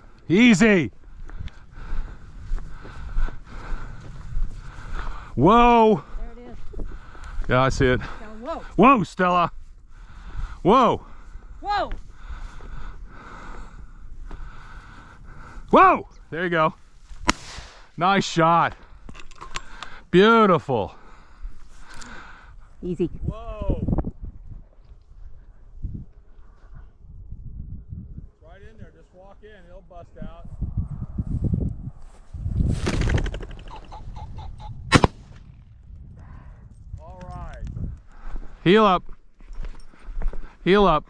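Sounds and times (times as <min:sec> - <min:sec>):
wind rumbling on microphone: 0:00.0 - 0:08.8, 0:09.5 - 0:18.0, 0:21.0 - 0:41.0
shotgun shot: 0:17.2 - 0:17.9, 0:34.9 - 0:35.4
bird wingbeats: 0:32.6 - 0:34.3.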